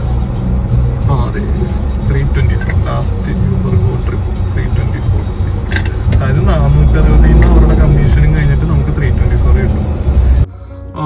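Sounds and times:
deep car rumble inside cabin: 0.0 - 10.5.

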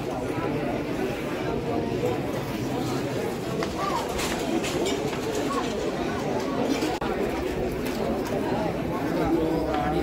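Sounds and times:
crowd of men chattering: 0.0 - 10.0.

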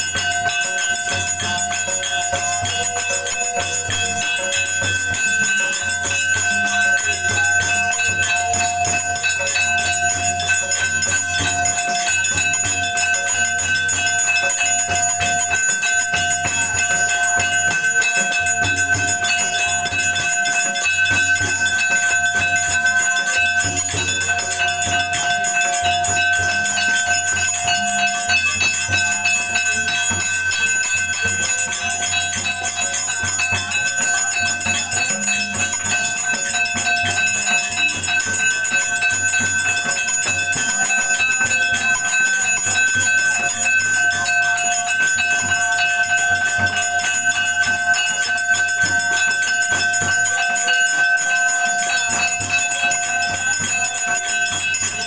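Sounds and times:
steady ringing tones: 0.0 - 55.0
temple bells ringing rapidly: 0.0 - 55.0.

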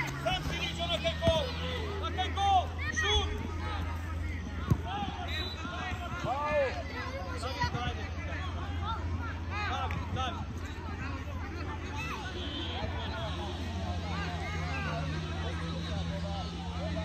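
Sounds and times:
children shouting: 0.0 - 4.1
football being kicked: 4.5 - 5.2.

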